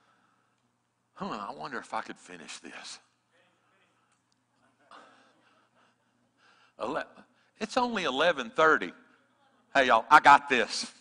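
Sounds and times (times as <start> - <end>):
breath into microphone: 4.9 - 7.6.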